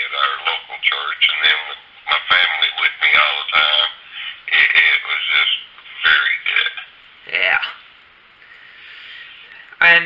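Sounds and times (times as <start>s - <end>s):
man talking over telephone: 0.0s - 7.8s.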